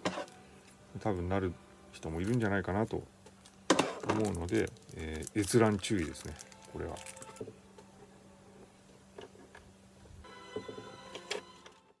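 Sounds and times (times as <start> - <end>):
steady high held tones: 10.2 - 11.9.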